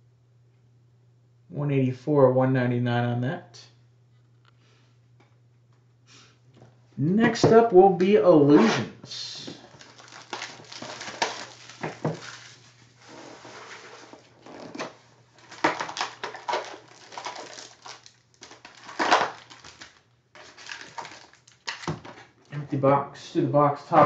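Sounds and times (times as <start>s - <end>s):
low steady hum: 0.0s - 24.0s
cardboard box rustles and scrapes: 10.8s - 14.8s.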